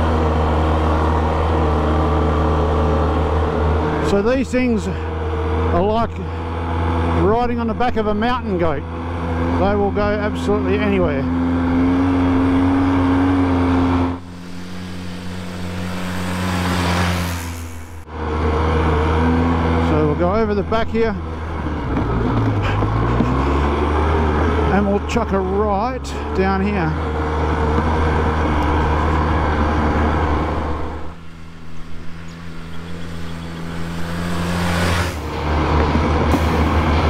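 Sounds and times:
atv engine running: 0.0 - 37.0
man speaking: 4.0 - 5.1, 9.6 - 11.3, 19.8 - 21.2, 24.7 - 27.0.

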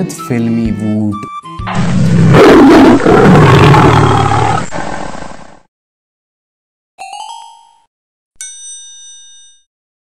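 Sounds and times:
loud roaring sound effect: 1.7 - 5.4.

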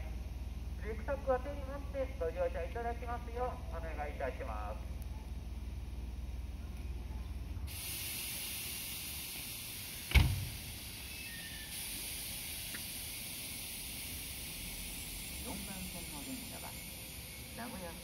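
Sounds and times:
public-address announcement: 0.8 - 5.0, 15.4 - 18.0
steady hiss: 7.6 - 18.0.

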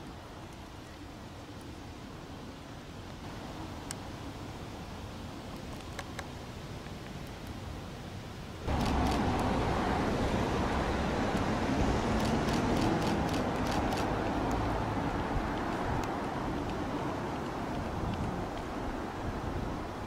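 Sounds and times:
quiet street ambience: 0.0 - 20.0
traffic rumble: 0.0 - 20.0
sharp clicks: 8.7 - 9.5, 12.2 - 14.6.

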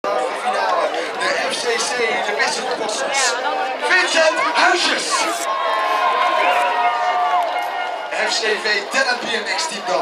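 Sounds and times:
overlapping crowd chatter: 0.0 - 10.0.

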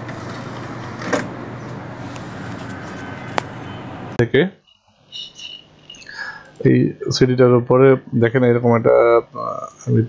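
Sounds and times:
disc drive tray clunk: 0.0 - 3.8
background hiss: 3.4 - 10.0.

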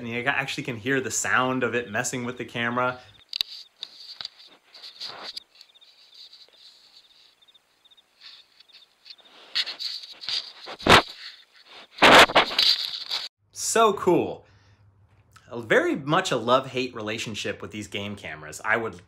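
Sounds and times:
claws scraping camera housing: 3.2 - 7.6, 8.2 - 13.3
fur rubbing over microphone: 3.4 - 7.5, 8.2 - 13.3.

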